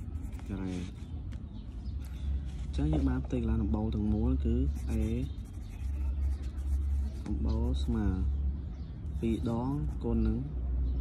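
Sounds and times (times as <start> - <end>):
low room rumble: 0.0 - 11.0
pencil scratching on paper: 4.6 - 7.9.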